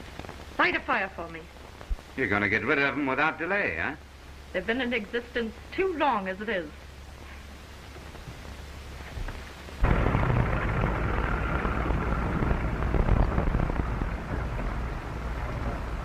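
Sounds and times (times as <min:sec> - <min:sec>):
fire crackling: 0:00.0 - 0:16.0
hum and hiss: 0:00.0 - 0:16.0.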